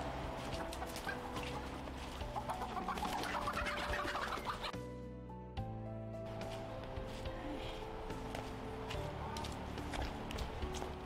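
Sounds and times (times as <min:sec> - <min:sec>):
chickens squawking and clucking: 0:00.4 - 0:04.8.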